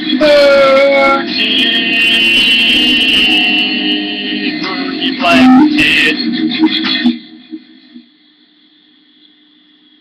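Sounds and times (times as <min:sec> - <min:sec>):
electric guitar high note: 0:00.1 - 0:06.8.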